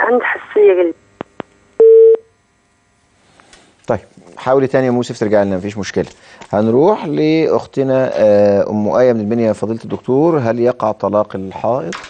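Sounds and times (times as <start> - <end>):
loud steady phone beep: 1.8 - 2.3.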